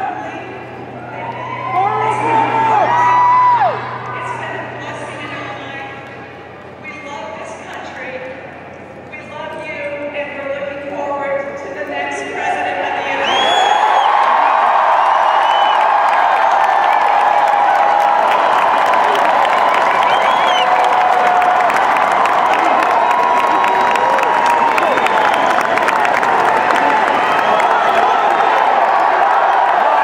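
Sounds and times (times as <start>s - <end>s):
crowd cheering and clapping: 0.0s - 4.8s, 13.2s - 30.0s.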